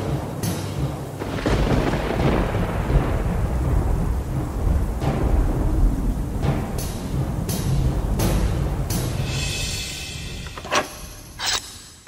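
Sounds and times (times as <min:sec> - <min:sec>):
rumble of thunder: 0:00.0 - 0:09.8
rain-like hiss: 0:00.0 - 0:12.0.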